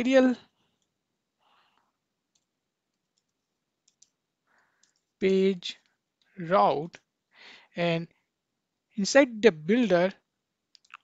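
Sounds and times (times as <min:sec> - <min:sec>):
computer keyboard key clicks: 0:03.1 - 0:04.2.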